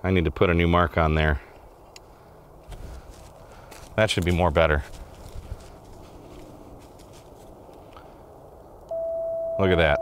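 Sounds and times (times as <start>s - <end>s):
footsteps through dry leaves: 2.6s - 7.7s
steady single-pitched tone: 8.9s - 10.0s.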